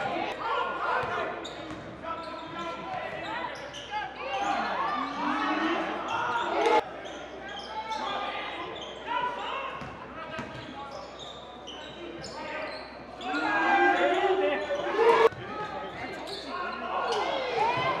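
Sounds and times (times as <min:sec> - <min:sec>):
voices calling: 0:00.0 - 0:09.6
shoe squeaks: 0:10.5 - 0:15.3.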